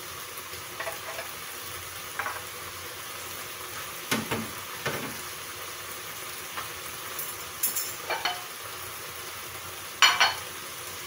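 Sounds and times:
meat sizzling in a frying pan: 0.0s - 11.0s.

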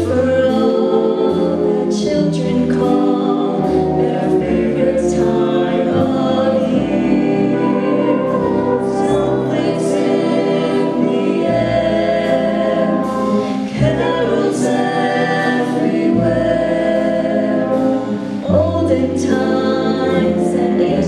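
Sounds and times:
jazz ensemble with vocalists: 0.0s - 21.0s
upright bass: 0.0s - 21.0s.

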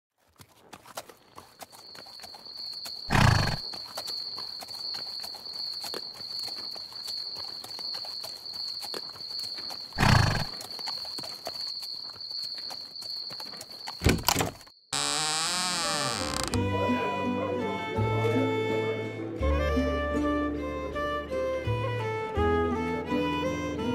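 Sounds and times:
high insect trill: 1.3s - 16.6s
music: 16.1s - 23.9s.

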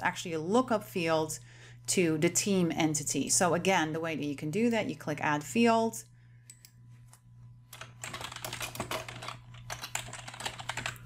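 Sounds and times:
computer keyboard typing: 7.7s - 11.0s.

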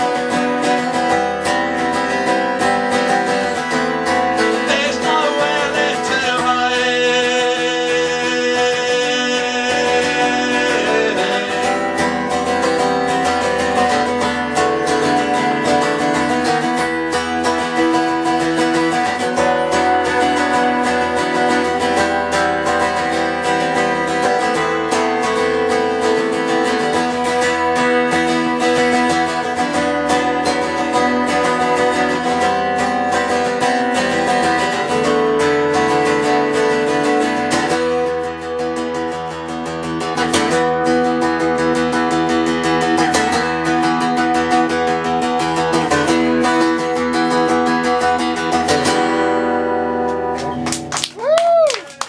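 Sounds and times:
acoustic guitar strumming: 0.0s - 51.2s.

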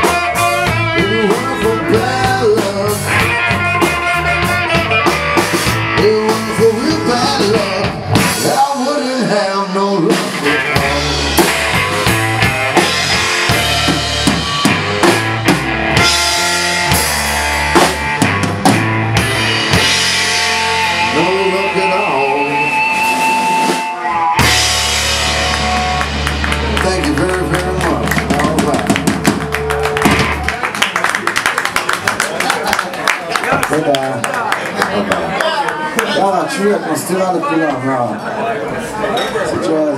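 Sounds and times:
blues-rock band playing: 0.0s - 37.9s.

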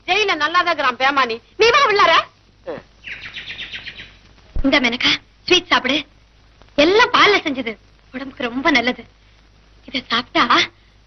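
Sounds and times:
bird twittering: 3.0s - 4.2s.

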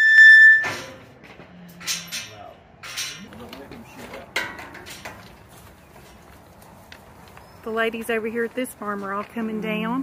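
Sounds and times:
footsteps on grass: 5.2s - 9.6s.

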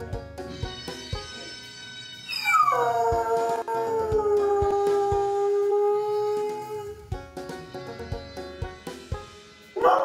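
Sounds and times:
dog howling: 2.3s - 7.1s
music with a beat: 7.0s - 9.9s.

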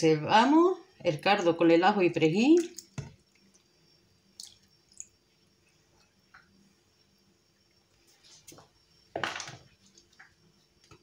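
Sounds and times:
liquid trickling and dripping: 2.4s - 5.2s, 9.5s - 11.0s.

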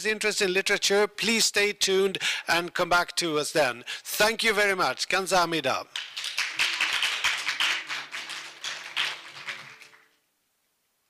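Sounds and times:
audience applause: 6.0s - 10.2s.

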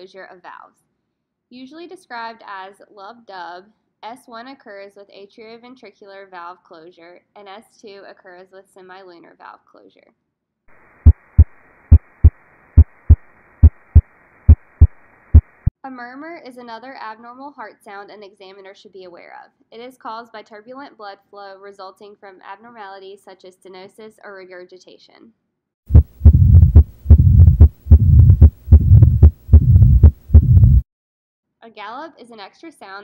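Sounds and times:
heart beating: 11.0s - 15.7s, 25.9s - 30.8s.

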